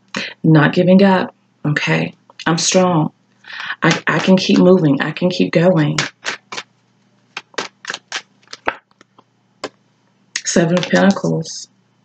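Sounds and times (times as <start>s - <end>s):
cards shuffling: 3.6s - 4.6s, 6.0s - 6.7s, 7.3s - 9.2s, 10.5s - 11.3s.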